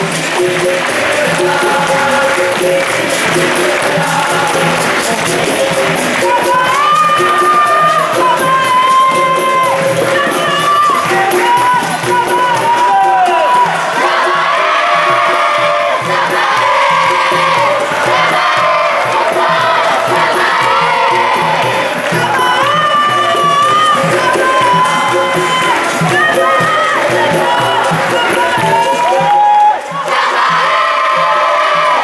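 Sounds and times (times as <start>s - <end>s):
clapping: 0.0s - 14.3s, 14.9s - 32.0s
children singing: 0.0s - 29.3s
berimbau and pandeiro: 0.0s - 32.0s
children cheering and shouting: 6.0s - 32.0s.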